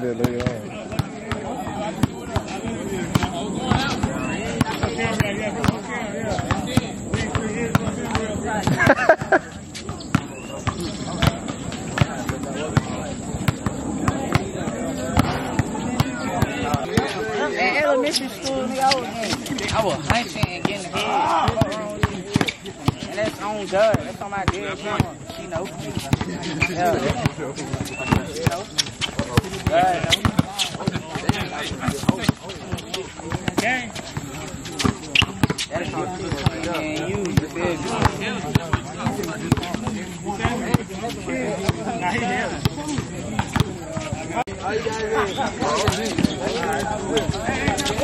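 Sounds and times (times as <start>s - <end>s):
players' voices: 0.0s - 48.0s
basketball bouncing on hard court: 0.2s - 2.5s, 3.1s - 17.1s, 21.4s - 26.3s, 26.9s - 35.6s, 36.3s - 40.8s.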